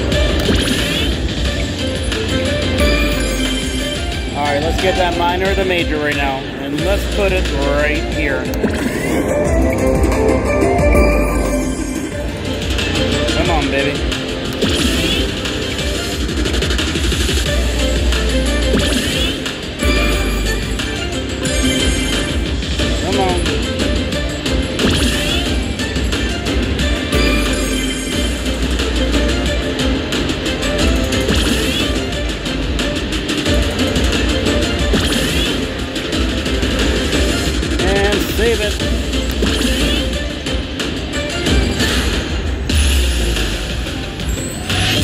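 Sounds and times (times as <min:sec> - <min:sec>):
slot machine bonus music: 0:00.0 - 0:45.0
slot machine spin jingles: 0:02.8 - 0:05.2, 0:10.2 - 0:13.8, 0:18.5 - 0:23.5, 0:27.0 - 0:28.7.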